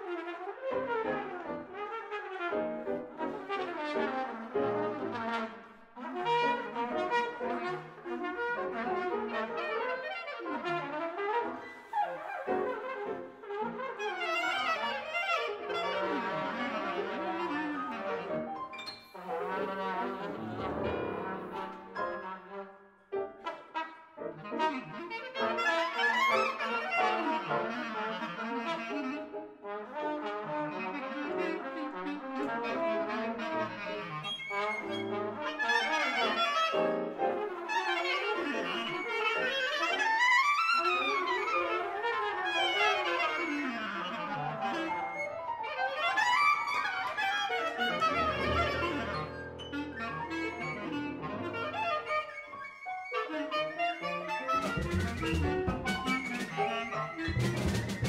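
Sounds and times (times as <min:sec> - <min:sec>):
trumpet: 0:00.0 - 0:58.0
reed instrument: 0:06.4 - 0:29.0, 0:41.0 - 0:58.0.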